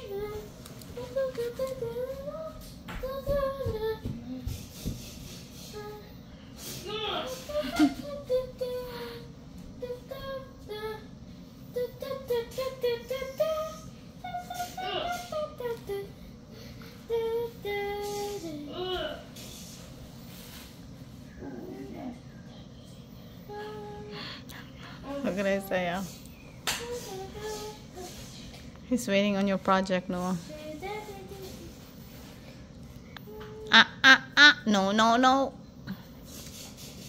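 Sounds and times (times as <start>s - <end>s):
child singing wordless tune: 0.0s - 19.7s, 23.4s - 28.6s, 30.3s - 32.3s, 33.2s - 34.5s.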